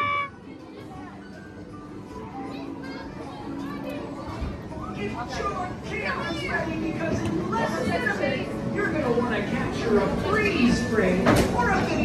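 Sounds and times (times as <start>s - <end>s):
children's voices and chatter: 0.0s - 12.0s.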